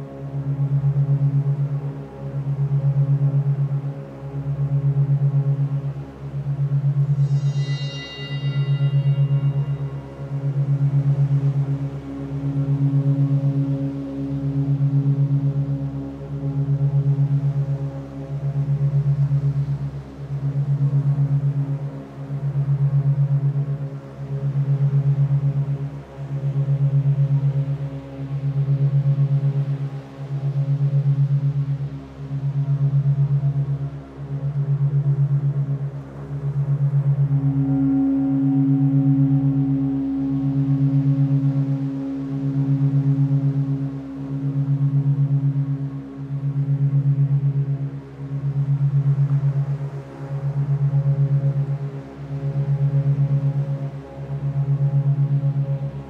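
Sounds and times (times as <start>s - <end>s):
low pulsing drone hum: 0.0s - 56.0s
higher steady tone: 4.6s - 11.9s, 26.5s - 56.0s.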